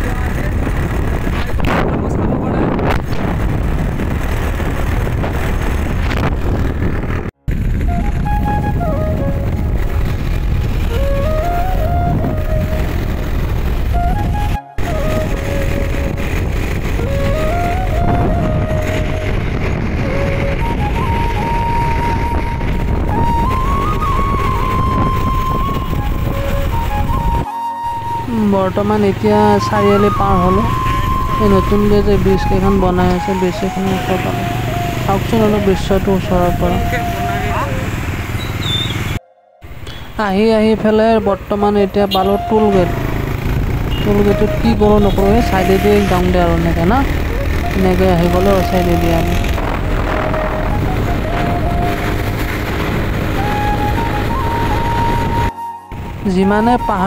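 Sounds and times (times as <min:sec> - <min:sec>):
motorcycle wind and road noise: 0:00.0 - 0:57.0
held melody note: 0:07.8 - 0:10.1, 0:10.8 - 0:38.0, 0:39.1 - 0:43.2, 0:43.9 - 0:57.0.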